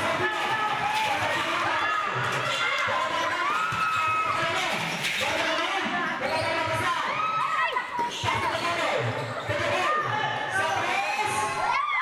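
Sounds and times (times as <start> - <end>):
spectators talking and calling out: 0.0 - 12.0
sneakers squeaking: 6.1 - 10.0.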